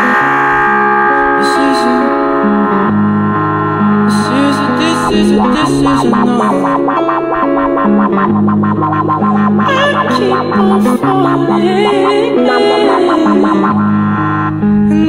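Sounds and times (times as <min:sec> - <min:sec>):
electric guitar music with effects: 0:00.0 - 0:15.0.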